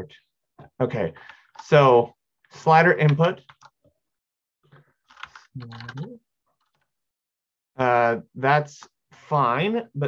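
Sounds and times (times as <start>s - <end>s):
computer keyboard typing: 3.1s - 3.8s, 5.1s - 6.1s.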